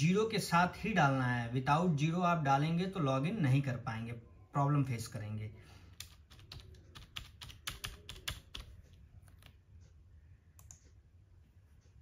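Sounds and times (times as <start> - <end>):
computer keyboard typing: 5.9 - 9.6, 10.6 - 10.9.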